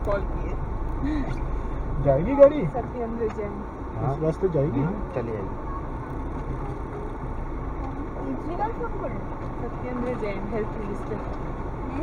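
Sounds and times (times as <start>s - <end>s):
car engine and tyre noise: 0.0s - 12.0s.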